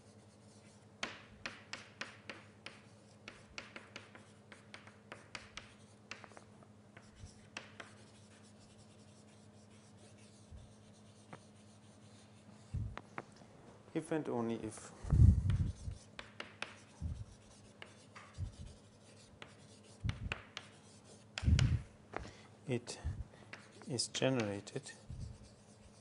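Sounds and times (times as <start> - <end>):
writing taps and scratches on board: 0.5 - 10.4, 15.4 - 21.8, 23.5 - 26.0.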